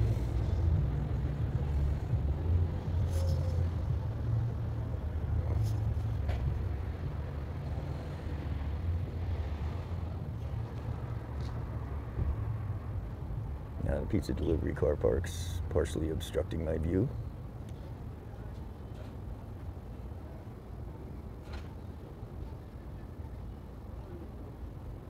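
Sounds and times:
traffic rumble: 0.0 - 25.0.

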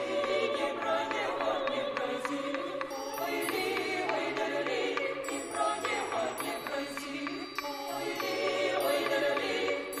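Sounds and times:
vocal ensemble singing unaccompanied: 0.0 - 10.0.

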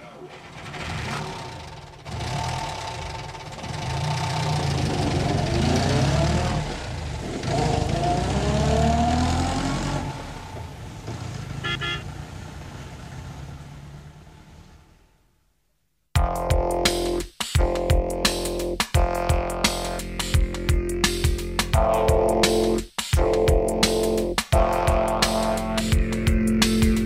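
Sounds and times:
car engine revving: 0.0 - 15.3, 18.3 - 27.0
car horn honk: 11.6 - 12.2.

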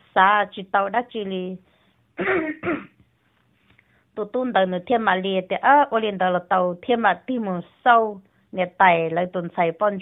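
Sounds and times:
person clearing throat: 2.2 - 3.0.

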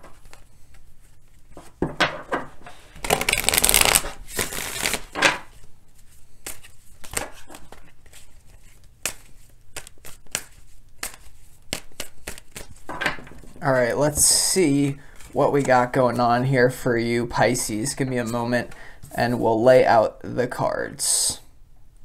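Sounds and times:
cards being shuffled: 2.7 - 14.3.

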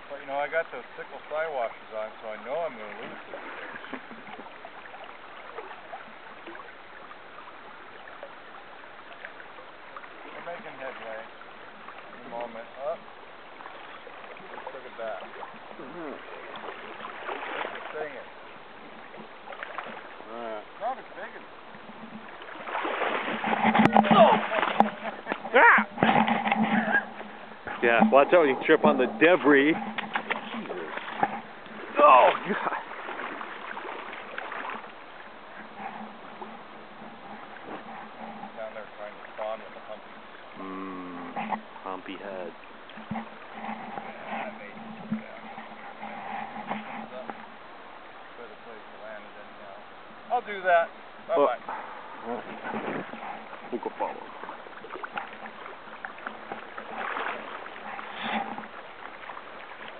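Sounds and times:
river water running: 0.0 - 59.9.

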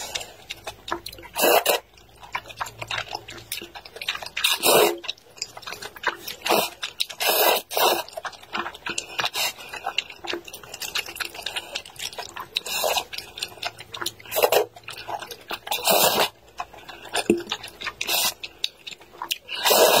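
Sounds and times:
noodle slurps: 0.0 - 20.0
wet chewing of noodles: 0.0 - 20.0.

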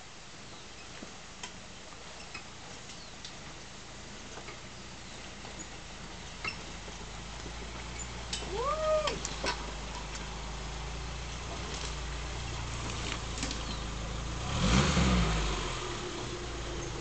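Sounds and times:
car engine running slowly: 0.0 - 17.0
engine revving and churning mud: 5.3 - 17.0.

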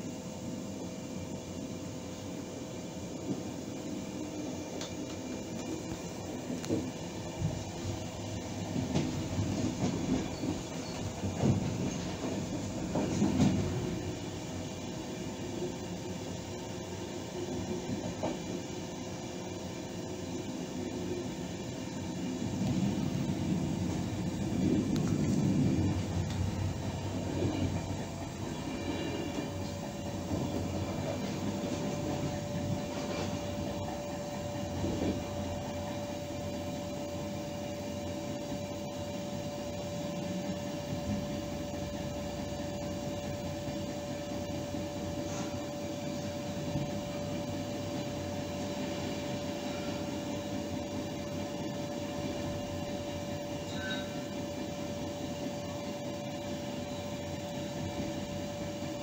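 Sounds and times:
steady high whine: 0.0 - 59.0
train wheels rumbling on rail: 0.0 - 59.0.

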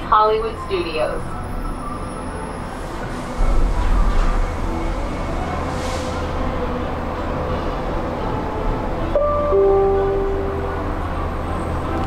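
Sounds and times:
gondola cabin rumbling on cable: 0.0 - 9.1
held musical notes: 2.8 - 12.0.

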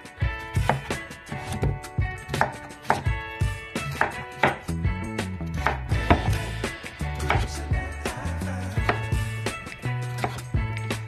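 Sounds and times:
background music: 0.0 - 11.0
knife slicing pumpkin: 0.6 - 3.2, 3.8 - 4.7, 5.5 - 6.6, 7.2 - 7.5, 8.8 - 10.5
knife knocking on cutting board: 4.0 - 4.6, 5.6 - 6.4.

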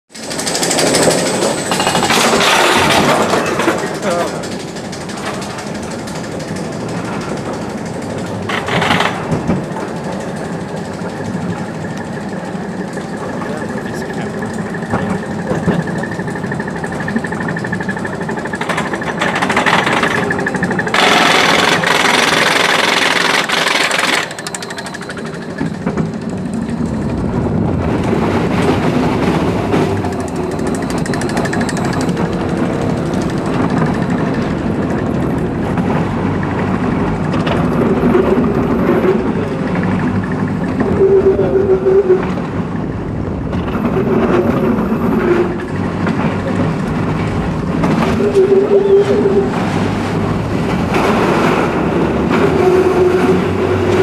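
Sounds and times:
roller coaster lift chain clatter: 0.1 - 54.0
train wheels rumbling on steel track: 0.1 - 54.0.

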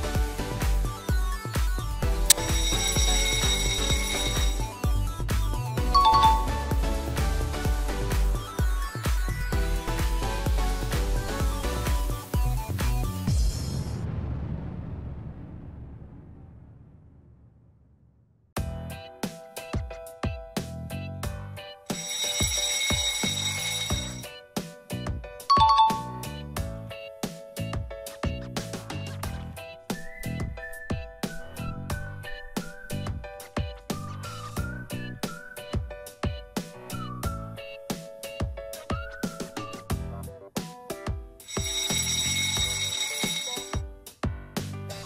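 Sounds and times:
background music with steady beat: 0.0 - 13.5, 18.6 - 45.0
alarm clock bell ringing: 2.3 - 4.9, 6.0 - 6.7, 21.9 - 24.3, 25.5 - 26.3, 41.4 - 43.8.

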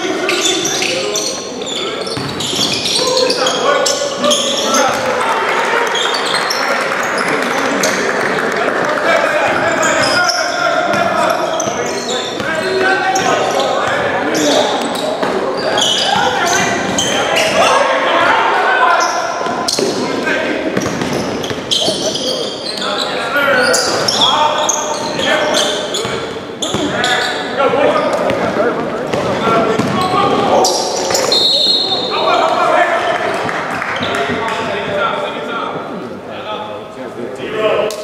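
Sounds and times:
players calling out: 0.0 - 35.3
basketball bouncing on hardwood: 2.2 - 2.4, 29.8 - 30.0.

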